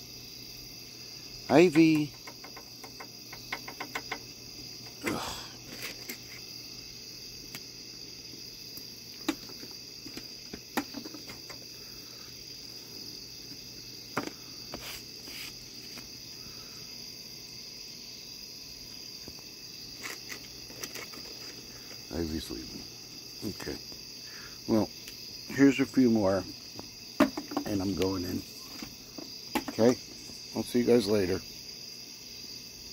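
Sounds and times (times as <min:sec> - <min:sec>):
crickets chirping: 0:00.0 - 0:32.9
clicks and knocks on deck: 0:01.9 - 0:04.3, 0:26.8 - 0:28.1, 0:28.8 - 0:30.0.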